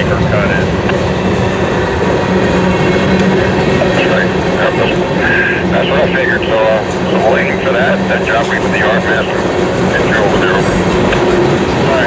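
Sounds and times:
freight train rumbling past: 0:00.0 - 0:12.0.

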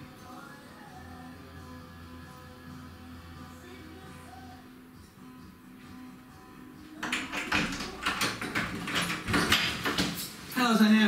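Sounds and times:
knocks and rattles at door: 0:07.0 - 0:10.3.

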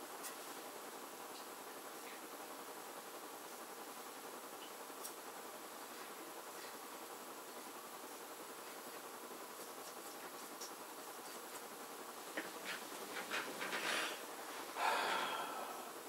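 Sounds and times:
breathy puff of air: 0:13.8 - 0:16.0.

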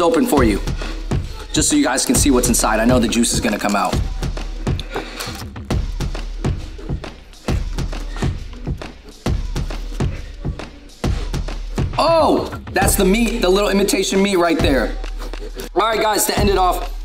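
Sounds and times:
background music with beat: 0:00.0 - 0:17.0.

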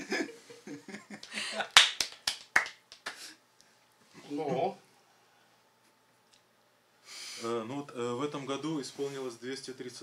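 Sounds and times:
scattered clapping: 0:01.2 - 0:03.2.

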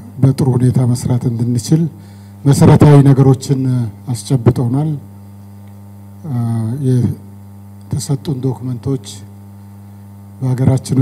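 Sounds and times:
low electrical mains hum: 0:00.0 - 0:11.0
man's voice: 0:02.5 - 0:05.0, 0:10.4 - 0:11.0.

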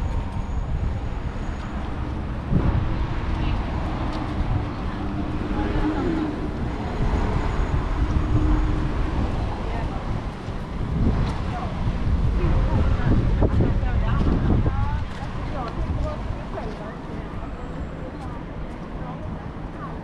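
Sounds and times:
wind on microphone: 0:00.0 - 0:16.8
road traffic rumble: 0:00.0 - 0:20.0
indistinct voices: 0:01.2 - 0:20.0.

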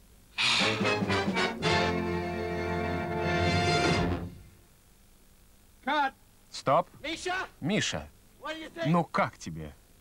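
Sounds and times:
orchestral music: 0:00.4 - 0:04.4.

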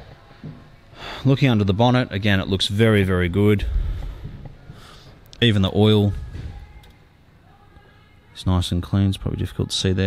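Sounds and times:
man speaking: 0:01.2 - 0:03.8, 0:05.4 - 0:06.2.

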